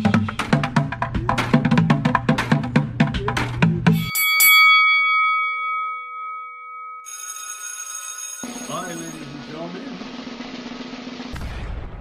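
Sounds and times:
ringing bell-like chime: 0:04.0 - 0:09.6.

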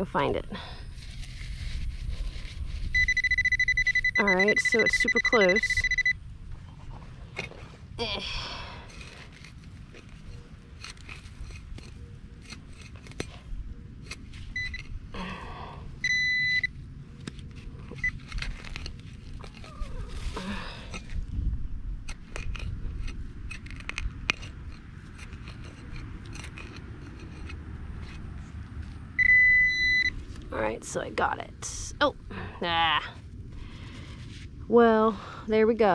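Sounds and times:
hand digger scraping soil: 0:00.9 - 0:03.2, 0:08.9 - 0:14.8, 0:17.2 - 0:21.2, 0:22.1 - 0:29.1
pinpointer beeping: 0:02.9 - 0:06.2, 0:14.6 - 0:14.9, 0:16.0 - 0:16.7, 0:29.2 - 0:30.2.

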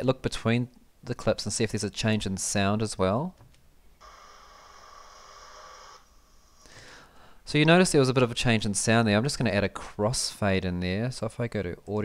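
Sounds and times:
steady hiss with high tones: 0:04.0 - 0:06.8.

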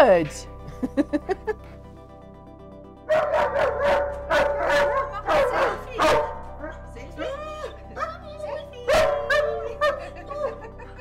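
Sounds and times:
background music: 0:00.0 - 0:11.0
dog barking: 0:03.1 - 0:06.9, 0:08.0 - 0:10.6.

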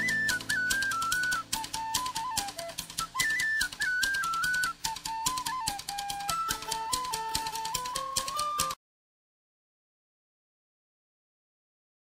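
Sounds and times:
fast percussive hits: 0:00.0 - 0:08.8
high stepping melody: 0:00.0 - 0:08.8.

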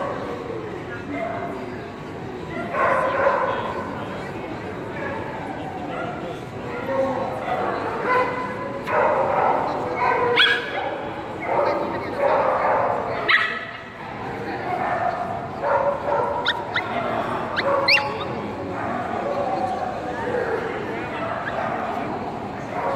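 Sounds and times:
people chattering: 0:00.0 - 0:22.9
dog barking: 0:07.6 - 0:13.7, 0:14.8 - 0:19.2.

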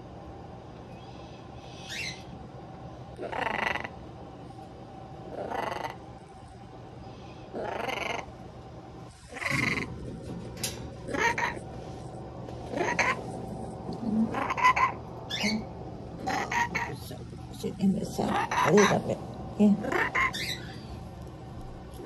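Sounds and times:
macaw raspy calls: 0:01.8 - 0:02.2, 0:14.3 - 0:15.6, 0:19.9 - 0:20.8.

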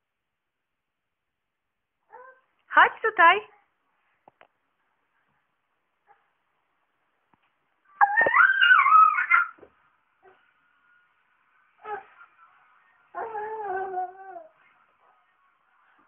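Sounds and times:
child squealing: 0:08.0 - 0:09.6.

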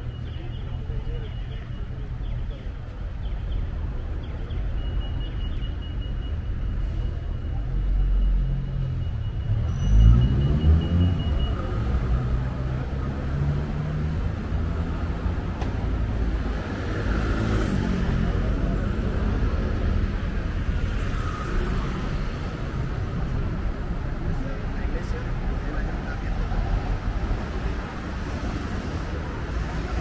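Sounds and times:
traffic rumble: 0:00.0 - 0:30.0
vehicle accelerating: 0:09.3 - 0:23.6.

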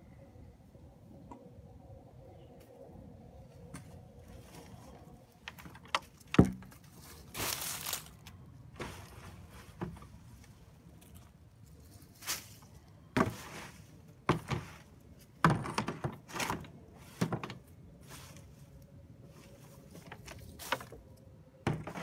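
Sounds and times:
dead leaves rustling: 0:06.2 - 0:15.0, 0:16.3 - 0:21.2
soil clumps thudding: 0:12.2 - 0:18.5.

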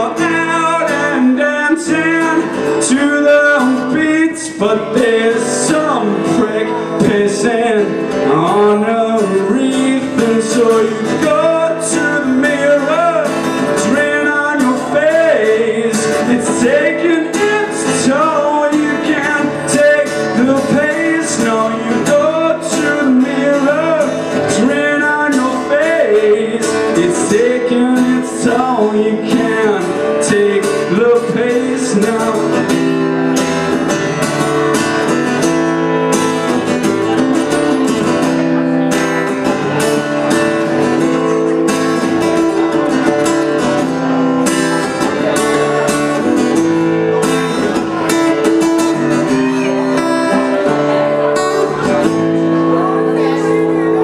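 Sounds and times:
acoustic guitar strumming: 0:00.0 - 0:54.0
person singing: 0:00.0 - 0:54.0.

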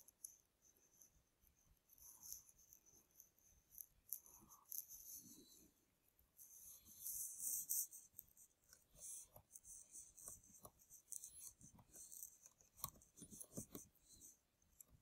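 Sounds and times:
soft high-pitched ticks: 0:00.0 - 0:05.3, 0:06.4 - 0:15.0.

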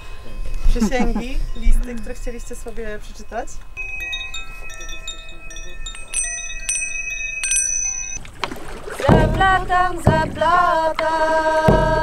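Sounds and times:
metallic chimes ringing: 0:00.0 - 0:08.4.

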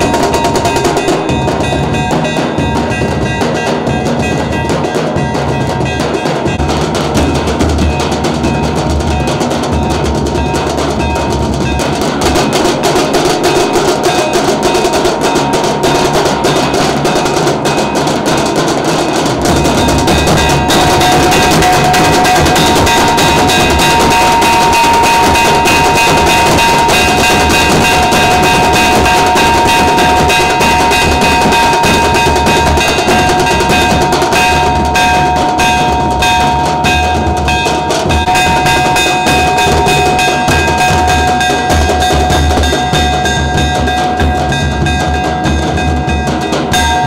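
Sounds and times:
bass drum roll: 0:00.0 - 0:47.0
high held tones: 0:00.0 - 0:47.0.

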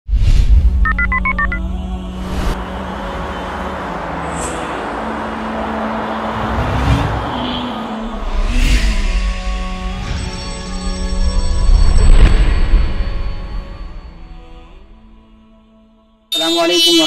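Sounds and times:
telephone keypad tones: 0:00.9 - 0:01.6
steady drone with whooshes: 0:01.6 - 0:15.6.

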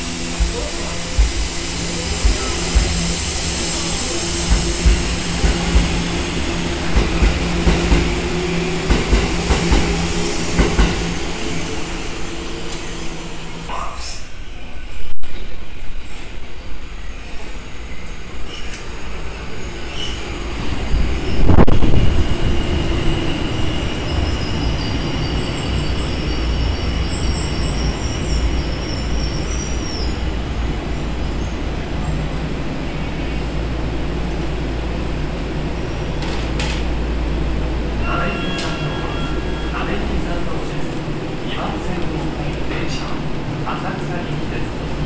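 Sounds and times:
train rumbling: 0:00.0 - 0:45.0
high wavering brake squeal: 0:16.9 - 0:30.4, 0:38.0 - 0:40.3.

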